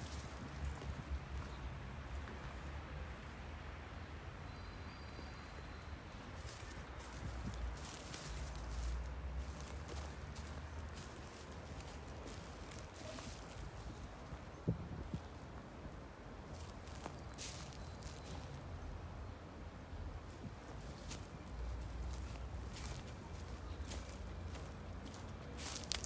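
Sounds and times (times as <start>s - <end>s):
footsteps on dry leaves: 0.0s - 2.7s, 6.4s - 14.4s, 16.5s - 18.6s, 20.2s - 26.0s.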